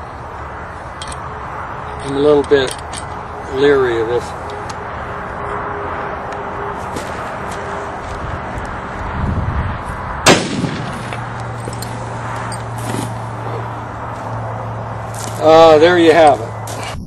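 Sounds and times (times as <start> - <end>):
heavy rifle shot with echo: 10.2 - 11.1.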